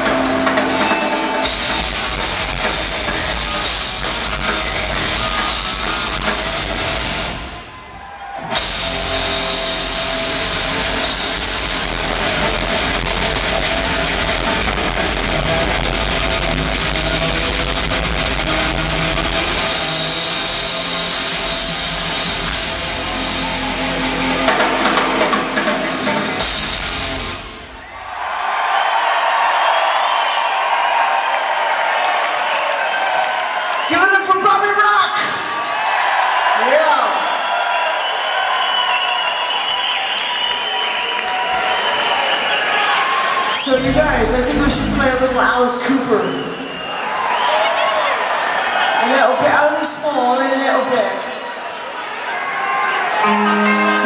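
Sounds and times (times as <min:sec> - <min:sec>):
live hard rock band: 0:00.0 - 0:27.8
crowd cheering: 0:00.0 - 0:54.0.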